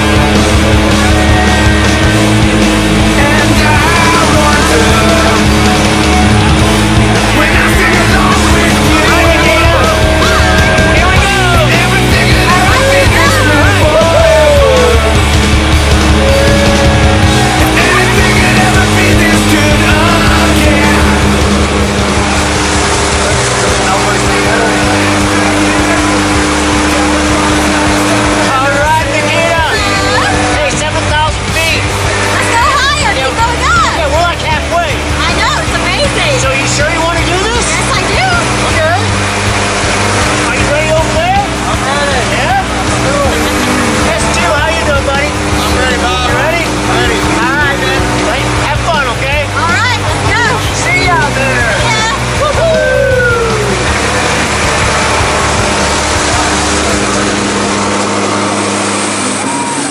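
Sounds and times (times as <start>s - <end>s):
people talking: 0.0s - 58.6s
propeller plane engines droning: 0.0s - 59.9s.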